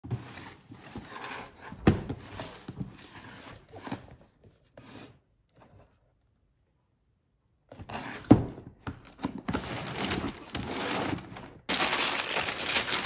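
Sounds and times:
cardboard box scraping on wood: 0:00.1 - 0:05.2, 0:07.8 - 0:08.5.

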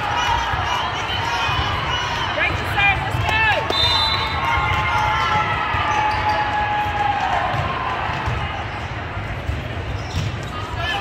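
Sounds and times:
balls thumping on courts: 0:07.3 - 0:08.6.

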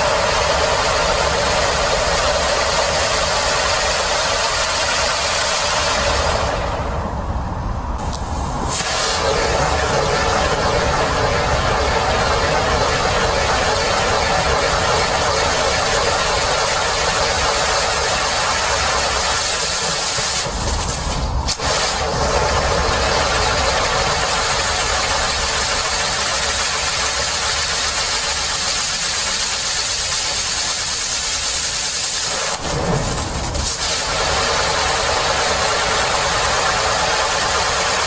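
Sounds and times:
firework fountain hissing: 0:00.0 - 0:38.0.

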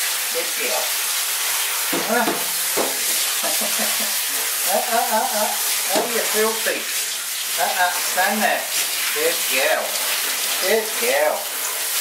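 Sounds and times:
shower spraying into bathtub: 0:00.0 - 0:12.0.

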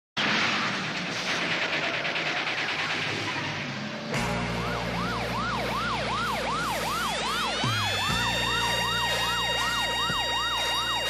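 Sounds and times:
siren yelping: 0:03.2 - 0:11.0.

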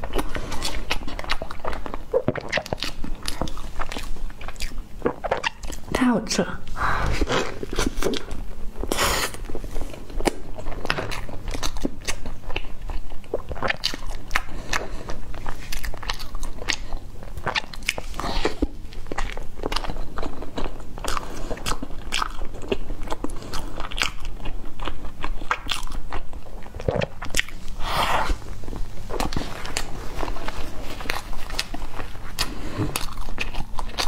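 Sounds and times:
biting and chewing bun: 0:00.0 - 0:06.0, 0:06.8 - 0:34.0.

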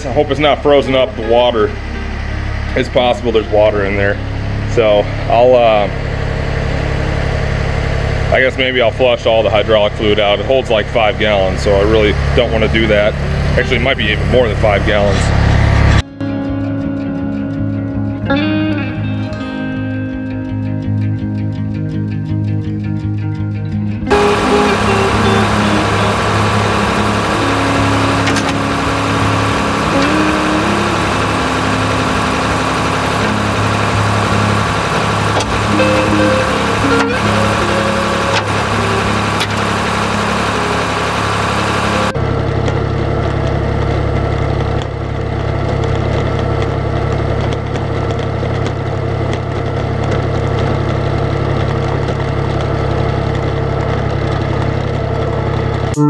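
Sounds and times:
guitar background music: 0:00.0 - 0:07.0, 0:15.8 - 0:42.2
tractor engine running: 0:24.1 - 0:55.9.

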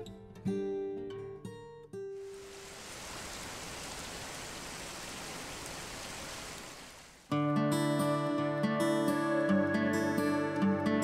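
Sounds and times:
waterfall rushing: 0:02.2 - 0:07.2.

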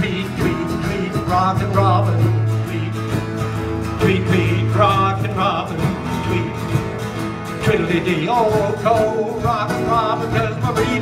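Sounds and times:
acoustic country guitar music: 0:00.0 - 0:11.0.

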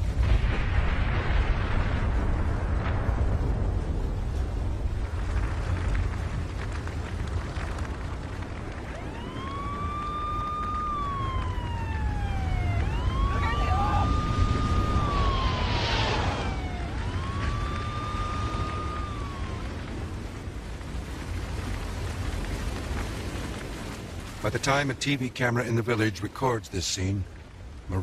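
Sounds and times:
steady low rumble: 0:00.0 - 0:28.0
emergency siren wailing: 0:08.2 - 0:21.7.

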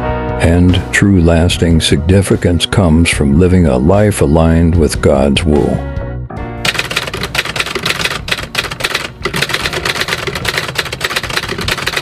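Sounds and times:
background music: 0:00.0 - 0:12.0
typewriter keys clacking: 0:06.6 - 0:12.0.

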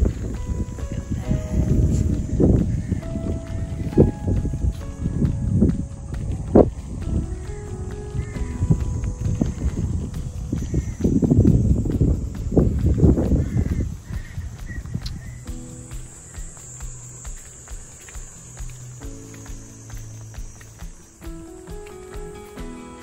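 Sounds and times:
wind rumbling on microphone: 0:00.0 - 0:21.0
background music held notes: 0:00.0 - 0:23.0.

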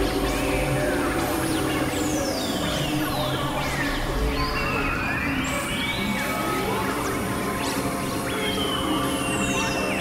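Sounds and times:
low noisy synth drones: 0:00.0 - 0:04.2.

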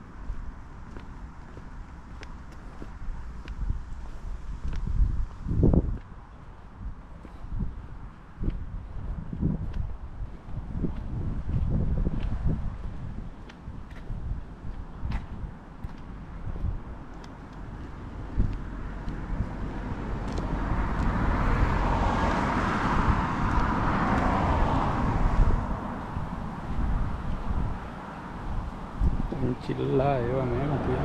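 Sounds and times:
car passing: 0:00.0 - 0:31.0
wind rumbling on microphone: 0:00.0 - 0:31.0.

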